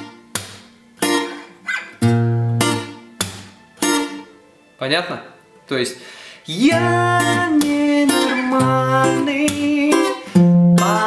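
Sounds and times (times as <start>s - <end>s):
acoustic guitar reggae pattern: 0.0s - 11.0s.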